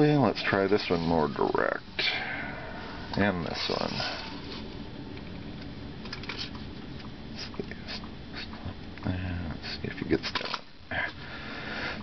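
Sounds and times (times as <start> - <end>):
faint scrapes and clicks: 6.1 - 6.7.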